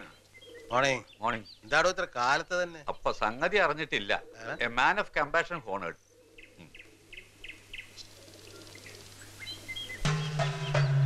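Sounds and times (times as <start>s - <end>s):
higher whistled bird notes: 8.5s - 11.0s.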